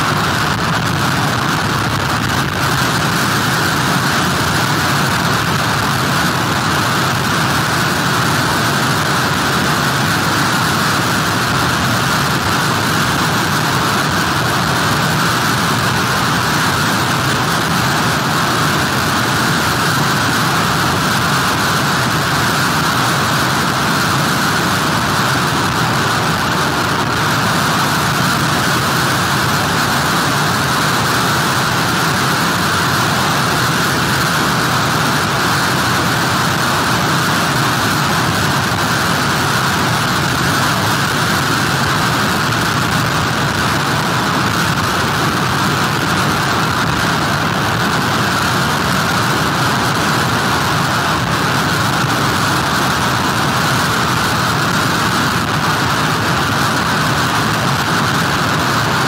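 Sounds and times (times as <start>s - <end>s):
heavy surf: 0.0s - 59.0s.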